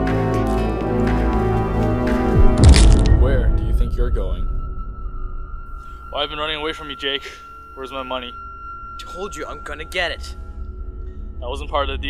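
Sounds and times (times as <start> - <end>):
background music: 0.0 - 12.0
sharp crack with deep boom: 2.4 - 4.5.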